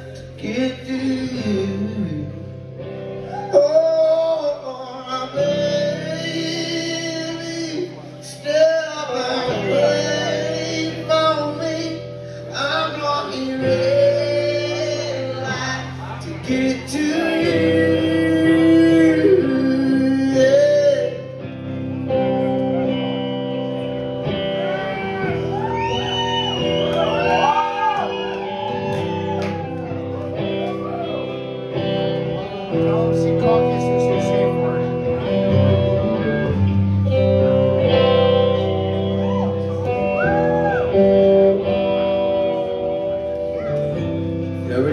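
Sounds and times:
person singing: 0.0s - 26.0s, 30.6s - 44.9s
country-rock band playing: 0.0s - 44.9s
guitar lead with bent notes: 0.0s - 44.9s.

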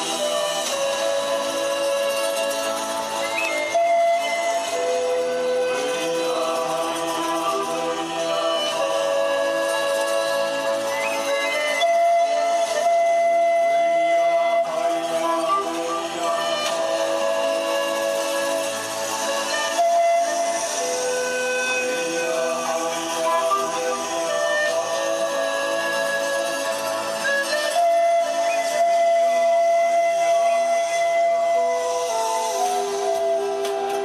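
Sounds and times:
low steady accompaniment: 0.0s - 34.0s
other instruments: 0.0s - 34.0s
pan flute melody: 0.0s - 34.0s.

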